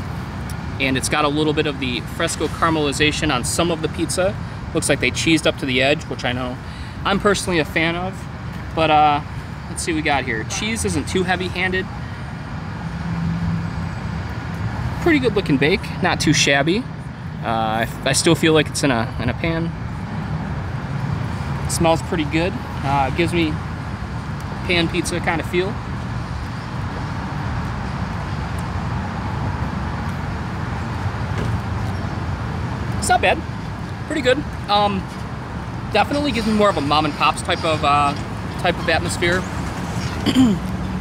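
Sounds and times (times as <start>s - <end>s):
road traffic rumble: 0.0s - 41.0s.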